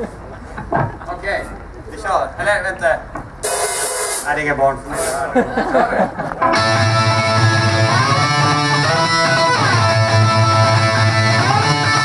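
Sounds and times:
rock band playing: 3.4 - 4.3, 6.4 - 12.0.

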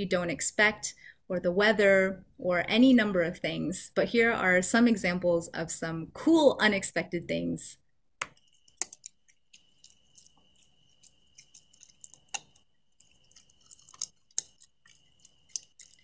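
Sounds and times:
bear crunching acorns: 8.8 - 16.0.

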